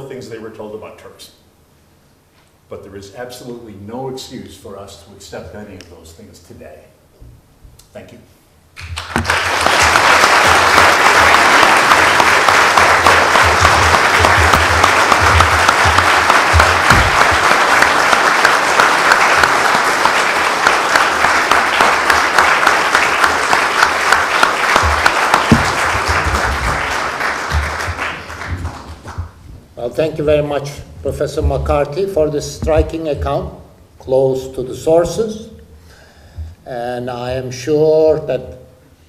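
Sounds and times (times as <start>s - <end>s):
large audience applauding: 8.8s - 29.4s.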